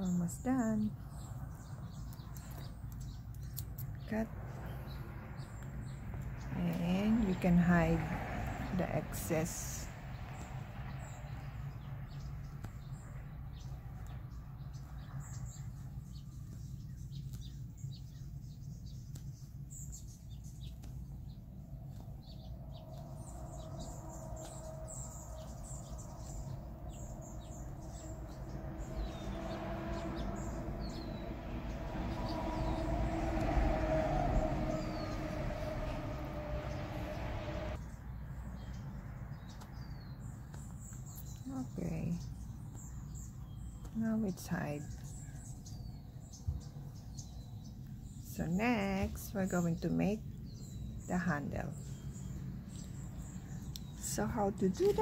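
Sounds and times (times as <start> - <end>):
low drone: 0.0 - 16.4, 20.0 - 37.9
steady low hum: 0.0 - 38.0
small birds chirping: 0.0 - 55.0.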